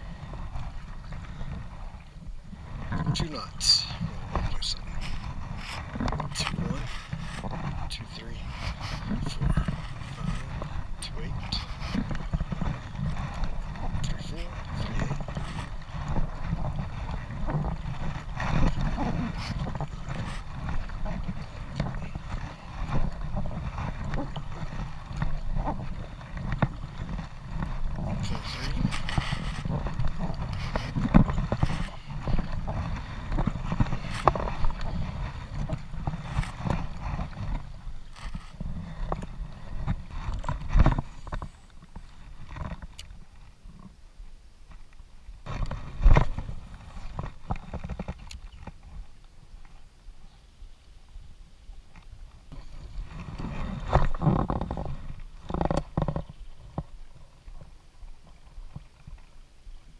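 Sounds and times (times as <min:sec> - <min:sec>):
wind buffeting microphone: 0:00.0 - 0:43.0, 0:52.4 - 0:56.8
paddle splashing in water: 0:00.0 - 0:59.9.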